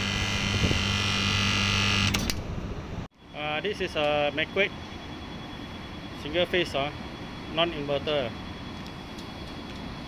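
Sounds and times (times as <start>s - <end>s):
compressor electrical hum: 0.0s - 10.0s
high whine: 0.0s - 10.0s.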